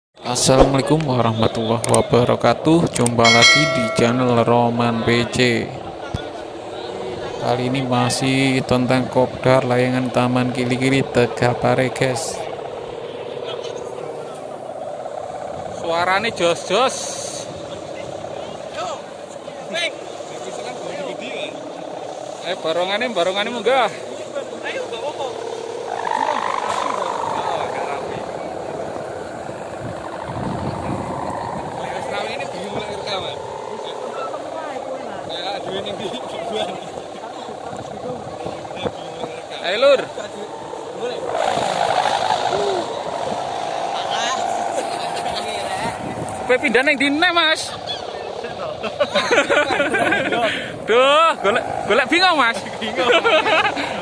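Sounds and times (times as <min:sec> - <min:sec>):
buzzing drone of kite hummers: 0:00.2 - 0:54.0
voices of people: 0:00.2 - 0:54.0.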